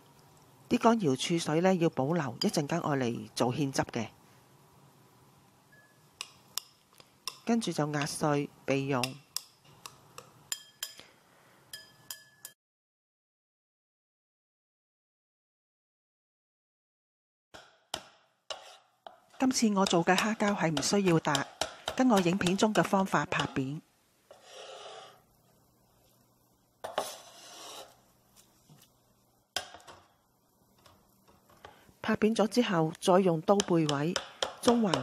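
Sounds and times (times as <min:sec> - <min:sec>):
chopsticks clinking ceramic bowl: 0:10.2 - 0:11.1, 0:11.7 - 0:12.6
cleaver chopping on cutting board: 0:17.6 - 0:19.2
short scrape: 0:24.3 - 0:25.2, 0:26.9 - 0:28.0.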